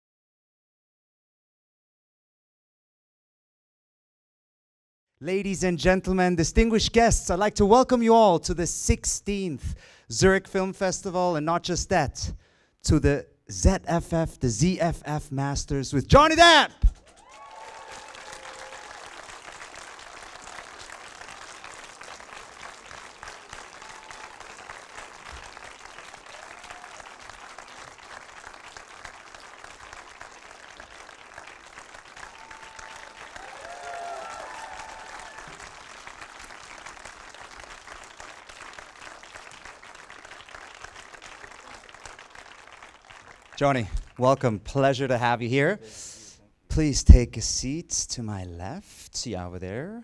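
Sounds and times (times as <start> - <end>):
audience applauding: 17.0 - 44.2.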